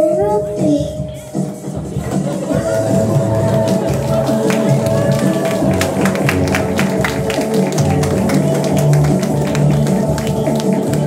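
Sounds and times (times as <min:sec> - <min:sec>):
music with long held notes: 0:01.0 - 0:11.0
handclaps: 0:02.4 - 0:11.0.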